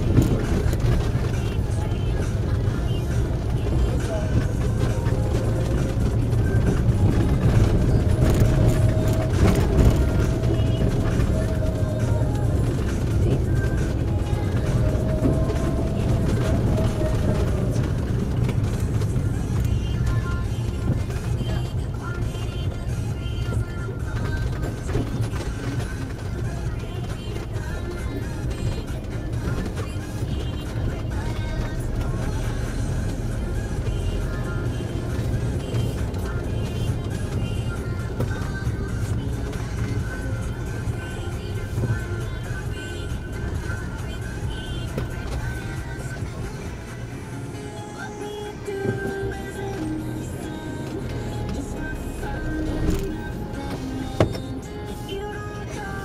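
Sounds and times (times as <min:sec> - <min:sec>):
car driving rumble: 0:00.0 - 0:56.0
music playing: 0:00.0 - 0:56.0.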